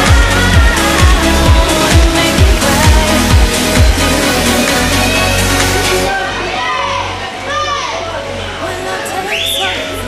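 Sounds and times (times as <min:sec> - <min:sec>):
background music: 0:00.0 - 0:10.0
children shouting: 0:06.1 - 0:08.1.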